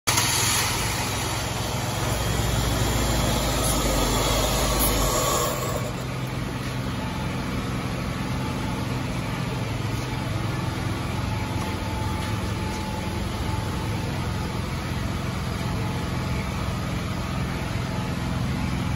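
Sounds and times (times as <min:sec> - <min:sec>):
car engine idling: 0:00.1 - 0:18.9.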